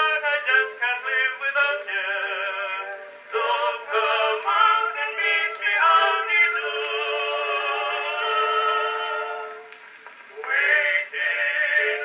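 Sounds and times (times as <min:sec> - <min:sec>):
old phonograph vocal recording: 0:00.0 - 0:12.0.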